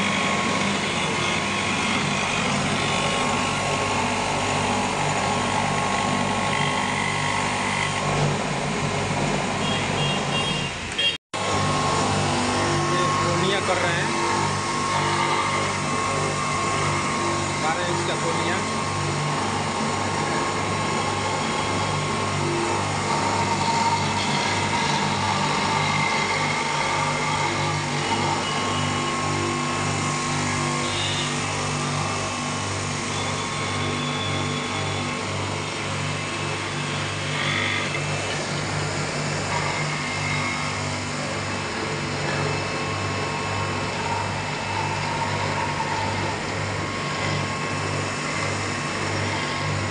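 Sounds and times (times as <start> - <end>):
electric motor humming: 0.0 - 10.6, 11.4 - 49.9.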